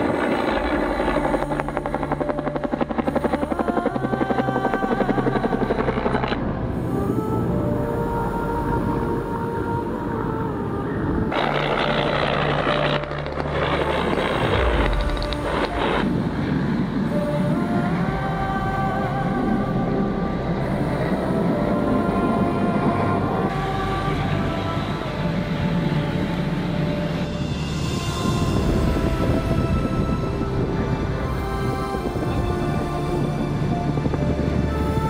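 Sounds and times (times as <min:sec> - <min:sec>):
helicopter rotor and engine: 0:00.0 - 0:06.4, 0:11.3 - 0:18.3
background music with sustained notes: 0:00.0 - 0:35.0.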